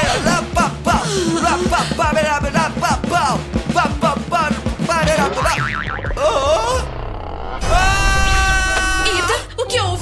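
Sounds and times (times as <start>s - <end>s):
person crying out in pain: 0.0s - 2.0s, 6.2s - 6.9s.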